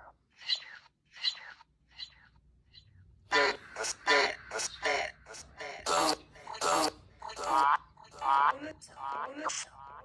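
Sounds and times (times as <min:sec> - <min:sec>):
whispery speech-like fragments from phone: 0:03.3 - 0:07.6.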